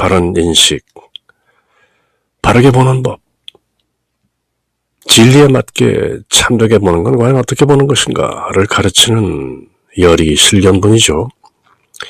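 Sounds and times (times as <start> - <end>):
man speaking: 0.0 - 1.2, 2.4 - 3.2, 5.0 - 11.5.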